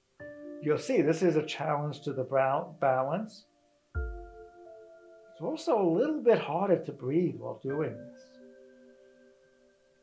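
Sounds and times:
soft ambient music tones: 0.0 - 10.0.

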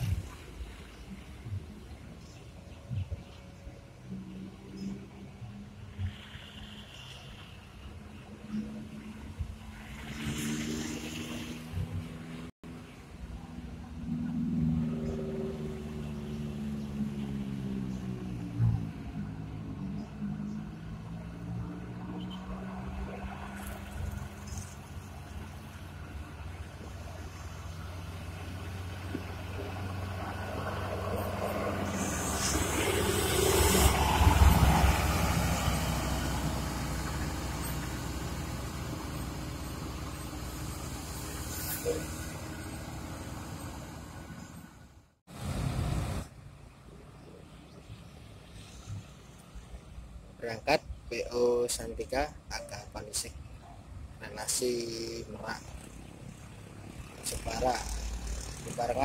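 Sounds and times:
bus diesel engine revving: 26.6 - 46.2, 57.2 - 59.0.

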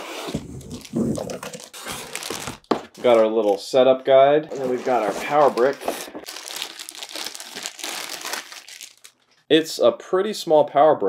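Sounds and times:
cardboard scraping: 0.0 - 3.6, 4.5 - 6.3
plastic bag rustling: 0.6 - 3.6, 4.5 - 9.2.

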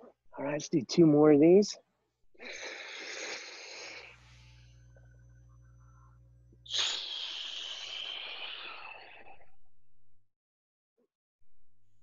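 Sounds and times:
air hissing out of arm bands: 6.7 - 9.5.

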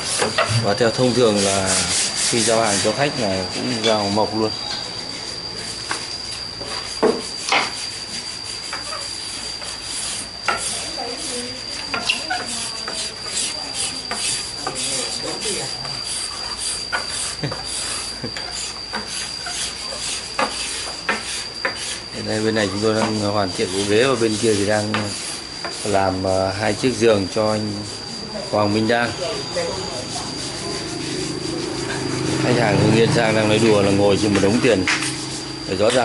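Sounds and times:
sanding wood by hand: 0.0 - 36.0.

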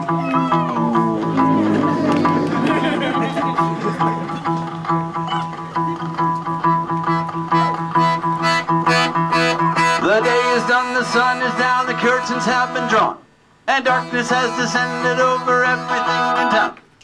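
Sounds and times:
person singing: 0.0 - 5.6, 10.0 - 13.1, 13.7 - 16.8
strummed acoustic guitar: 0.0 - 13.1
piano accordion chords: 0.8 - 13.1, 13.8 - 16.7.

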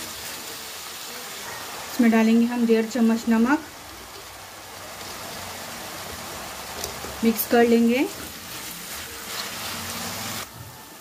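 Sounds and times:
onions sizzling in hot oil: 0.0 - 11.0
wooden spatula stirring: 3.8 - 10.5.

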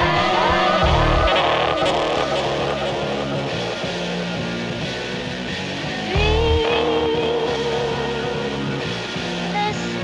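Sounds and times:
music soundtrack: 0.0 - 10.0.

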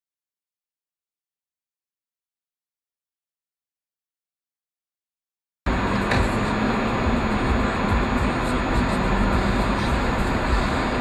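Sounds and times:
car road and engine noise: 5.7 - 11.0.

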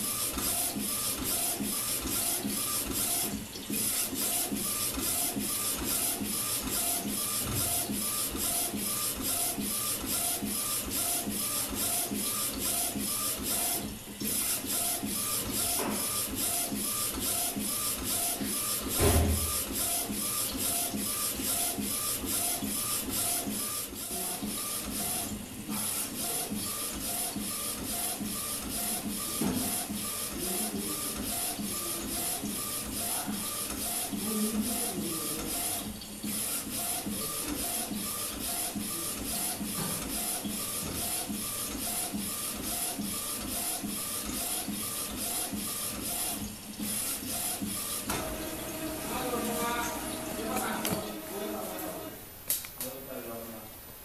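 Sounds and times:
printer carriage shuttling: 18.8 - 19.8, 48.0 - 52.1
loud thump: 19.0 - 19.6.

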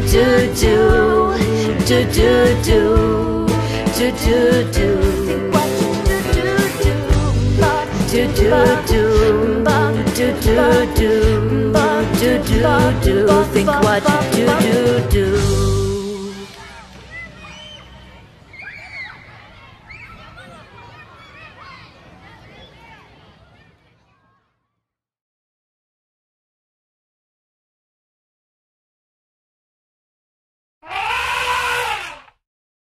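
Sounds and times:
children calling and squealing: 16.1 - 24.6, 30.8 - 32.3
cartoon elephant trumpeting: 30.8 - 32.4.

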